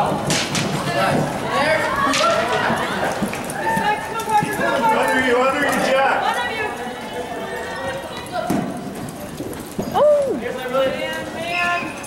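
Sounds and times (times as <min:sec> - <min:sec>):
spectators' voices: 0:00.0 - 0:12.0
hoofbeats on dirt: 0:07.8 - 0:12.0.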